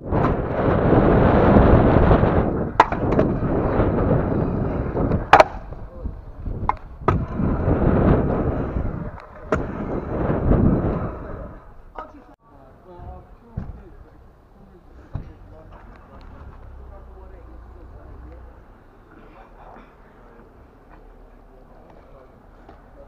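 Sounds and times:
wind on microphone: 0.0s - 12.0s
scooter wheels rumbling on concrete: 0.0s - 12.3s
scooter deck clacking on concrete: 2.8s - 3.4s, 5.2s - 5.7s.

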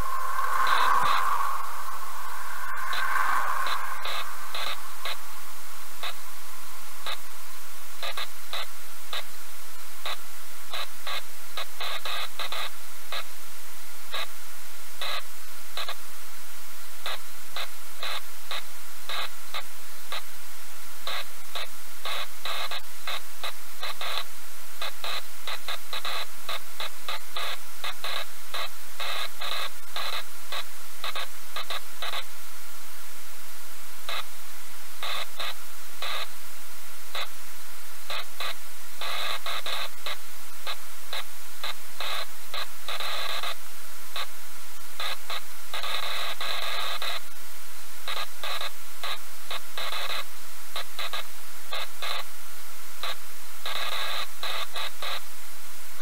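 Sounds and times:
loud static hiss: 0.0s - 56.0s.

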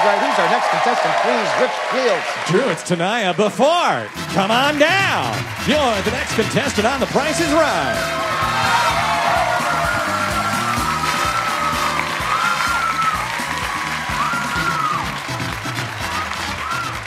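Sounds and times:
audience cheering and clapping: 0.0s - 17.0s
game show music: 0.0s - 17.0s.

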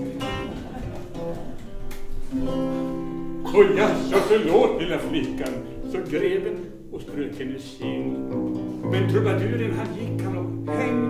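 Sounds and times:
lute chords strummed: 0.0s - 11.0s
lute plucked notes: 0.0s - 11.0s.

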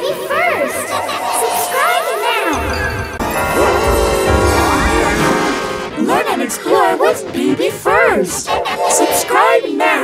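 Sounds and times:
crash: 2.6s - 6.1s
heavy low rumble: 2.6s - 6.4s
distorted intro music: 2.6s - 6.7s.

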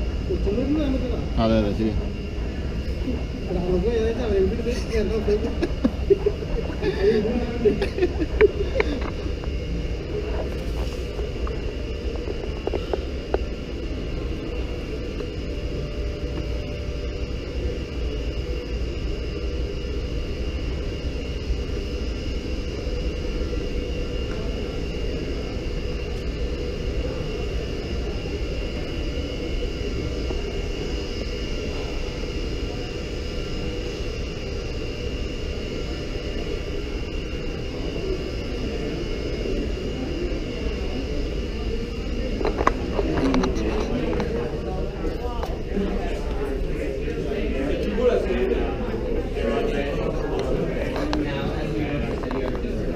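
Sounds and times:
droning rumble: 0.0s - 52.9s
voices: 0.0s - 52.9s.

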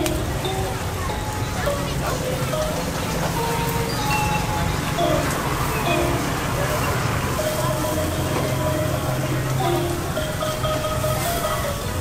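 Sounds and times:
low traffic rumble: 0.0s - 12.0s
people chattering: 0.0s - 12.0s.

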